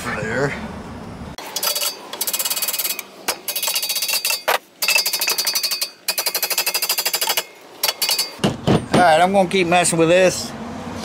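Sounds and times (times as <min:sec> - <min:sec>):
tool tapping on metal pump housing: 0:01.6 - 0:09.1.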